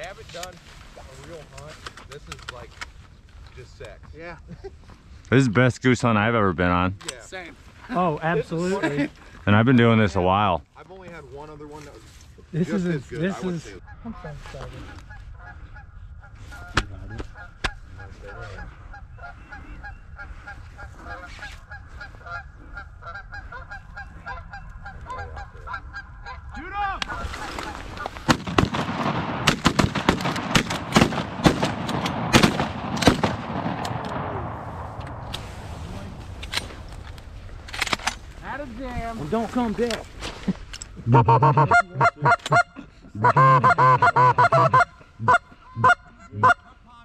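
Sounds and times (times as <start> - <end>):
geese honking: 13.4 - 28.4, 41.0 - 46.8.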